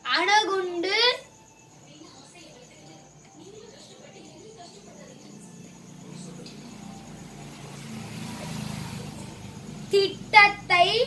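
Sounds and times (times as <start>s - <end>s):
vehicle engine drone: 5.6s - 11.0s.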